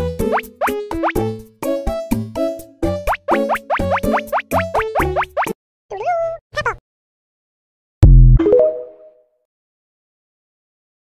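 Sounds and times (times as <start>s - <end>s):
cartoon cat meow: 5.9s - 6.8s.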